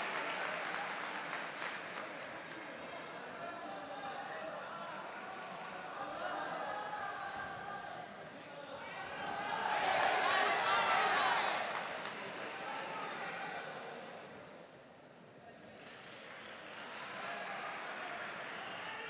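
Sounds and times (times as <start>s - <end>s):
crowd shouting: 8.8s - 13.9s.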